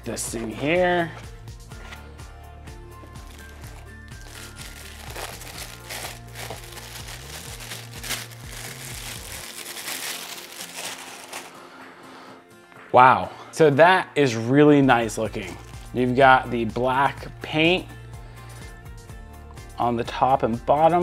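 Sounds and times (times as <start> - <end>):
background music: 0.0 - 21.0
plastic bag crinkling: 3.2 - 11.6.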